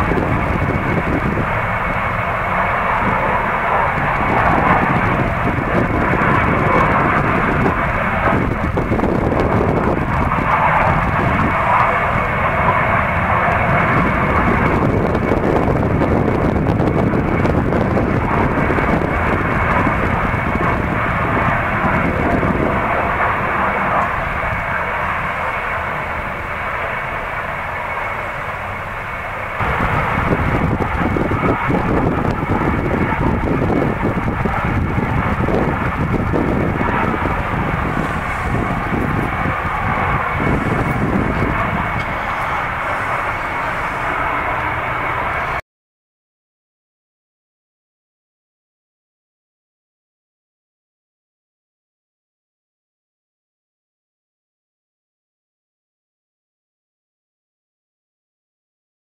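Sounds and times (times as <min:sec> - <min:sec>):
gas flare roaring: 0:00.0 - 0:45.6.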